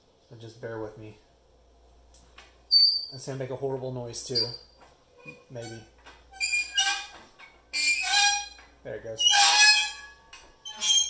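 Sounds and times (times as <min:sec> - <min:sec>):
metal vise squealing: 0:02.7 - 0:03.2, 0:04.3 - 0:11.0.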